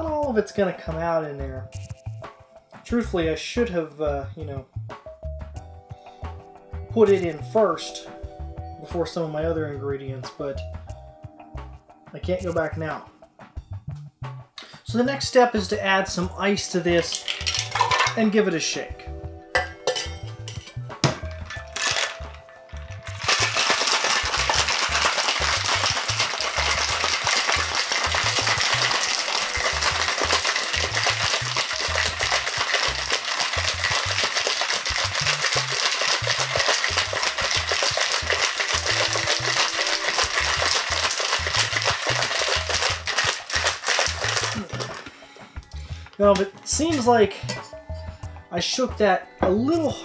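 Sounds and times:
metallic clinks of shaker tins: 17.0s - 18.2s, 19.6s - 45.1s
ice rattling in cocktail shaker: 17.0s - 18.3s, 19.6s - 45.1s.

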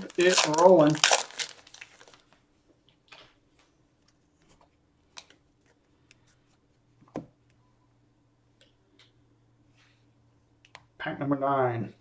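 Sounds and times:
trading cards clicking and rustling: 0.0s - 2.2s.

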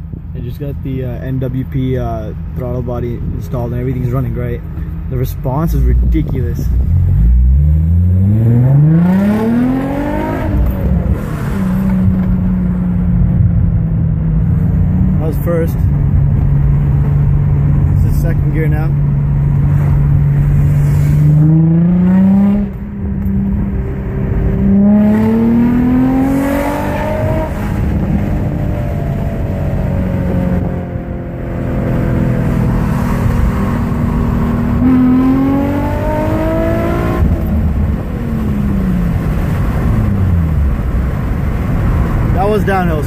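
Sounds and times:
car engine accelerating: 4.0s - 43.0s.

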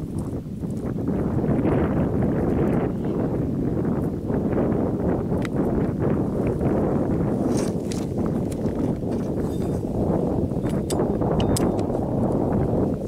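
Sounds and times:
wind rumbling on microphone: 0.0s - 13.0s
shells clicking and rustling in grass: 10.6s - 12.4s.

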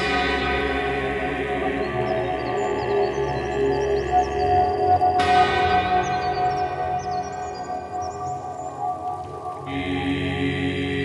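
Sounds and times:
sustained ambient drone: 0.0s - 11.0s.

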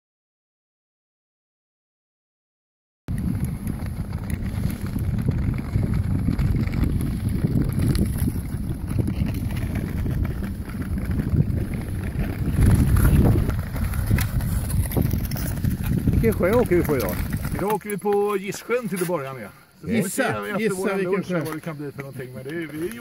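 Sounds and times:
wind buffeting microphone: 3.1s - 17.8s.

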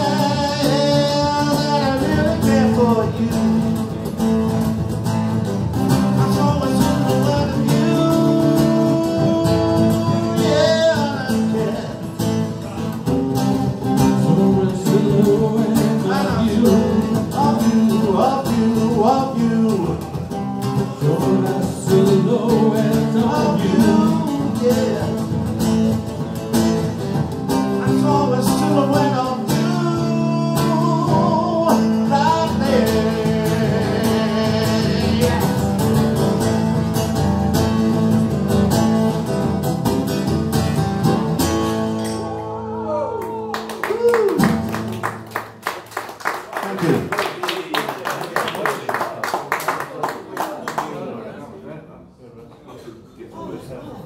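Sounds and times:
man singing: 0.0s - 4.6s, 5.8s - 25.8s, 27.5s - 36.5s
electric guitar: 0.0s - 45.7s
people clapping: 43.1s - 51.4s.

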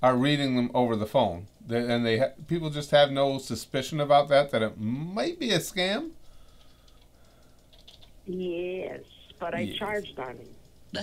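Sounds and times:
keyboard clicking: 5.8s - 8.2s.

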